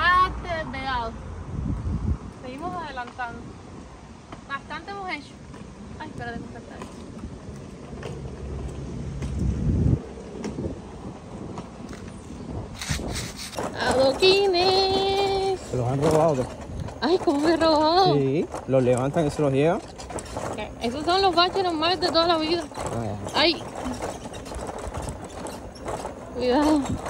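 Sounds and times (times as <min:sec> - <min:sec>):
street background: 0:00.0 - 0:27.0.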